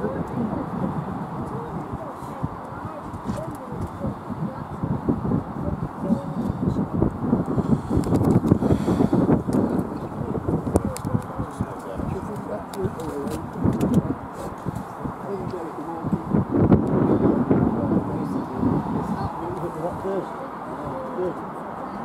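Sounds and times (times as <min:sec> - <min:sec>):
indistinct voices talking: 0:00.0 - 0:22.0.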